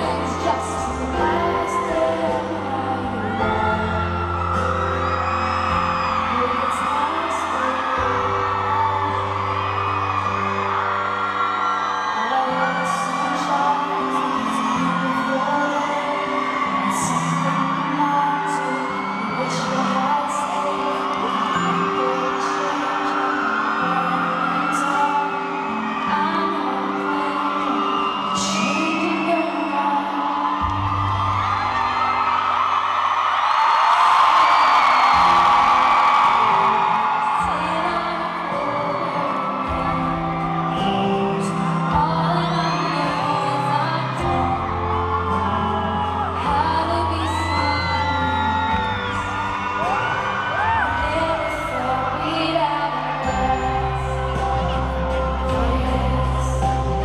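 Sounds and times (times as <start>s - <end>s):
woman singing: 0.0s - 11.0s, 12.0s - 31.4s, 33.9s - 57.0s
acoustic guitar: 0.0s - 57.0s
audience whooping and screaming: 0.0s - 57.0s.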